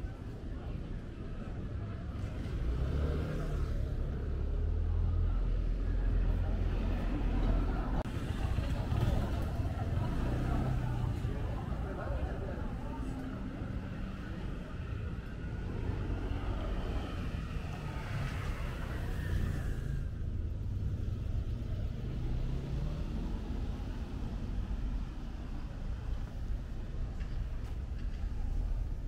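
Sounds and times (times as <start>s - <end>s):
traffic rumble: 0.0s - 29.0s.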